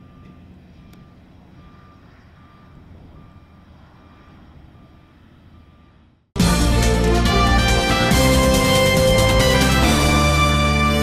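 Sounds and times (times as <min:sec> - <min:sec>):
electronic reversing alarm beeps: 0:00.0 - 0:06.1.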